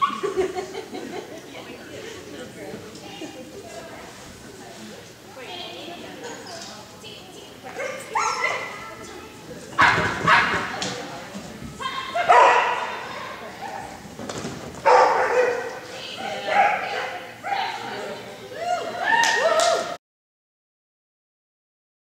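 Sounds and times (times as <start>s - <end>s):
dog barking in echoing arena: 9.8s - 10.8s, 12.0s - 14.0s, 14.8s - 17.9s.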